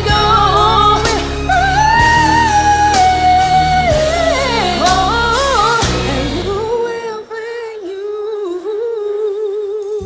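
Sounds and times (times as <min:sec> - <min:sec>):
woman singing with vibrato: 0:00.0 - 0:10.0.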